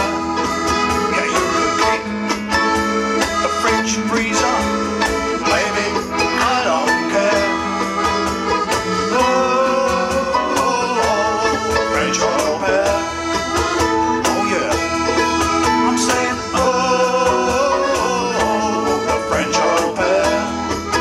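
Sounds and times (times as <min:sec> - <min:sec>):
accordion: 0:00.0 - 0:21.0
bass guitar: 0:00.0 - 0:21.0
brass instruments: 0:00.0 - 0:21.0
electric guitar: 0:00.0 - 0:21.0
percussion: 0:00.0 - 0:21.0.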